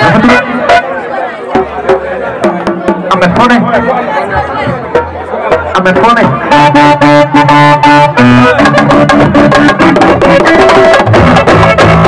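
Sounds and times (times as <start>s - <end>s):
horn-like melody over a beat: 0.0s - 12.0s.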